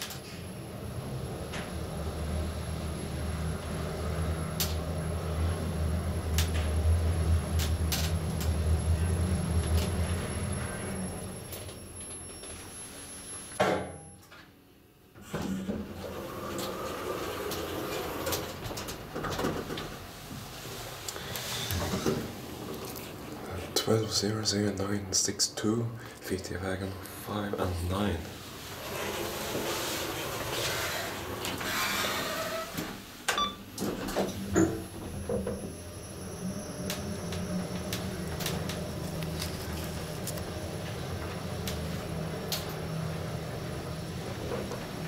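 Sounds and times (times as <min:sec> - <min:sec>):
elevator doors sliding open: 0:00.0 - 0:13.6, 0:15.2 - 0:24.7, 0:27.9 - 0:45.0
door motor humming: 0:15.4 - 0:20.1, 0:28.7 - 0:45.0.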